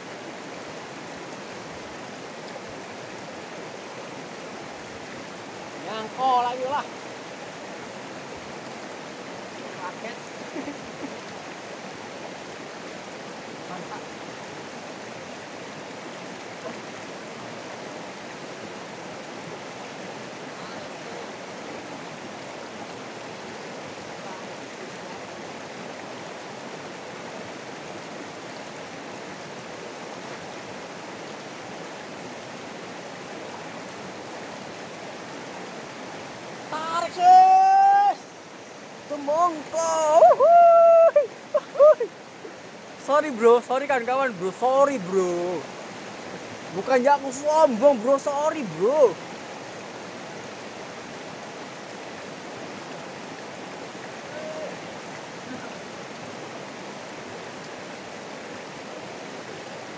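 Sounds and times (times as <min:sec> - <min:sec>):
river rushing over stones: 0:00.0 - 0:59.9.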